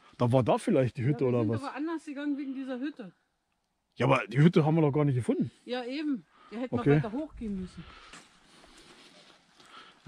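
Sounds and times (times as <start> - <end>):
footsteps on dead leaves: 7.9 - 10.0.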